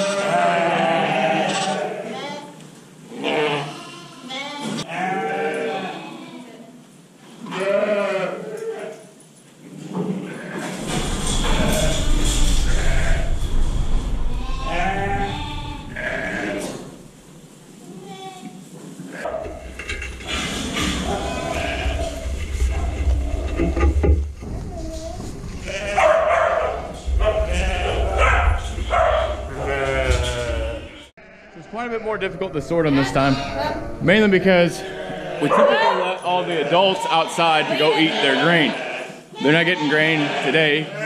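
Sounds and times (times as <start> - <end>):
sheep and lambs bleating: 0.0 - 6.6, 7.4 - 9.0, 12.6 - 13.3, 14.4 - 16.9, 21.0 - 22.2, 25.6 - 26.2, 27.4 - 31.8, 34.7 - 41.0
low rumble: 10.8 - 17.4, 20.8 - 35.4.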